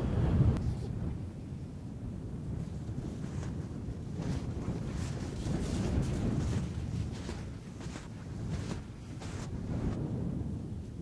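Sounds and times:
wind buffeting microphone: 0.0s - 11.0s
footsteps crunching in snow: 2.7s - 10.0s.

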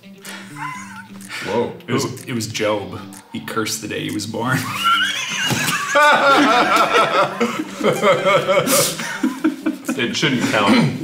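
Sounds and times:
men laughing: 0.4s - 1.1s, 4.5s - 11.0s.

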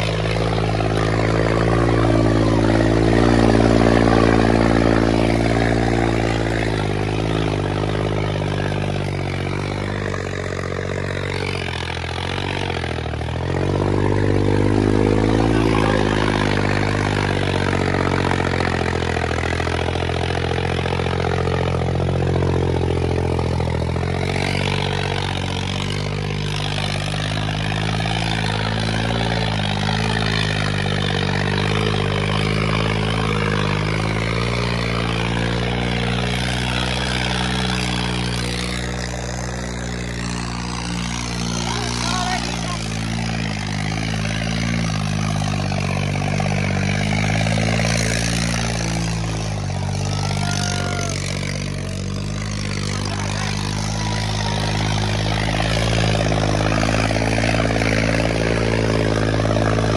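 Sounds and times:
tractor diesel engine running hard: 0.0s - 59.9s
wheels spinning in loose soil: 0.0s - 59.9s
voices: 14.6s - 19.6s, 37.8s - 44.4s, 48.1s - 58.5s.

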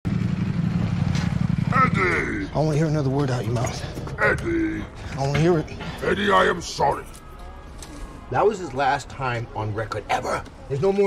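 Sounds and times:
motorcycle engine running: 0.1s - 3.1s.

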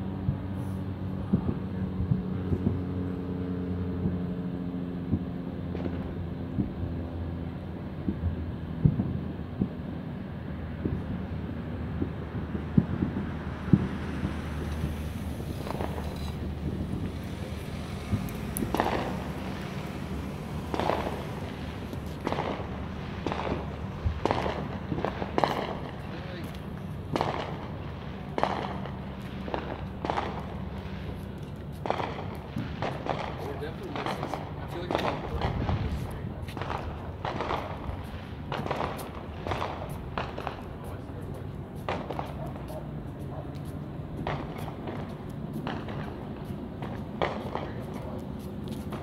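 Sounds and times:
low engine hum: 0.0s - 49.0s
fireworks popping: 10.6s - 49.0s.

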